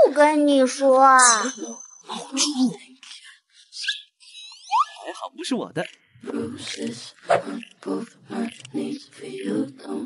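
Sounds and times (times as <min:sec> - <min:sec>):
comic squeaks and whistle glides: 0:01.1 - 0:02.7, 0:03.6 - 0:05.1.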